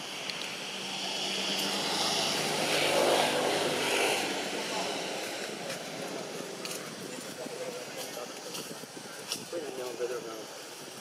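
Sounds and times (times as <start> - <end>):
engine passing: 0.0 - 8.3.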